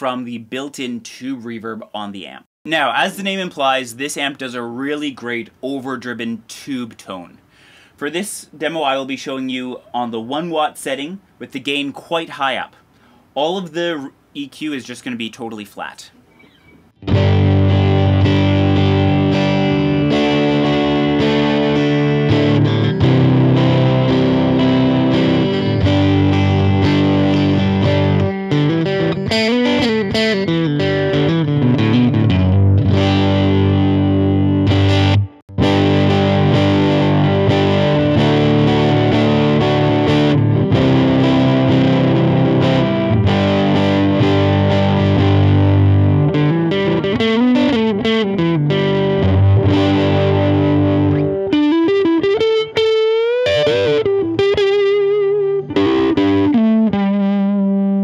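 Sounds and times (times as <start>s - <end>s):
overdriven electric guitar: 16.3s - 58.0s.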